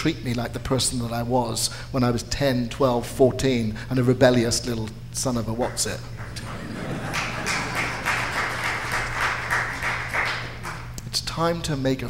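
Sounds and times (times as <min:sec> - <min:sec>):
crowd applauding: 0:06.2 - 0:11.0.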